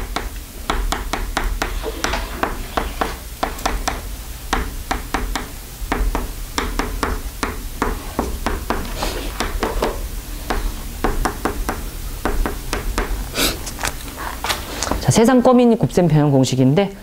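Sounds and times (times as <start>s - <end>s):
chalk tapping on chalkboard: 0.0s - 13.2s.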